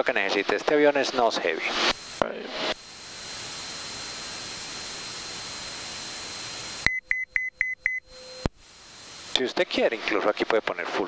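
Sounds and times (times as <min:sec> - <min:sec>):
radio hiss in headset: 0:01.2 - 0:06.9, 0:08.2 - 0:11.0
quick high beeps: 0:06.8 - 0:08.5.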